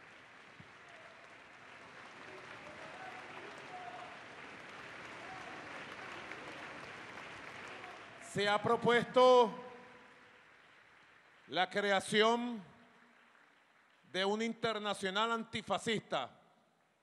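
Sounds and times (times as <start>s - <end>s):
audience applauding: 0.0s - 14.8s.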